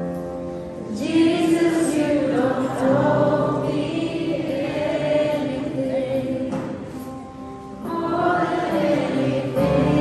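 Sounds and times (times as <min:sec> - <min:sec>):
worship band playing: 0:00.0 - 0:10.0
voices singing held notes: 0:00.9 - 0:10.0.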